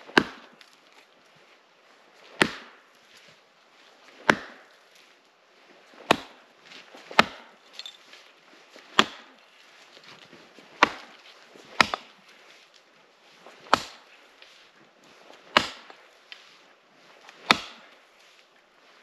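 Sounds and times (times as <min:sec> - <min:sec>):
axe chopping into frozen wood: 0:00.1 - 0:00.7, 0:02.4 - 0:02.8, 0:04.2 - 0:04.7, 0:06.0 - 0:06.4, 0:07.1 - 0:07.6, 0:08.9 - 0:09.4, 0:10.8 - 0:12.2, 0:13.6 - 0:14.0, 0:15.5 - 0:16.0, 0:17.3 - 0:17.9.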